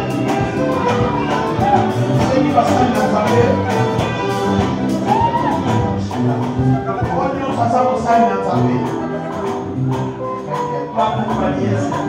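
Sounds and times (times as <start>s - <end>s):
band playing worship music: 0.0s - 12.0s
drum kit: 0.0s - 12.0s
hand percussion: 0.0s - 12.0s
choir singing: 5.5s - 12.0s.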